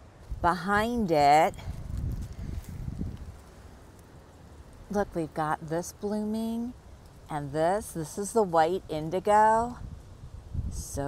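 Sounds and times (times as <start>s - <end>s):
woman speaking: 0.4s - 1.7s, 4.9s - 9.8s, 10.8s - 11.0s.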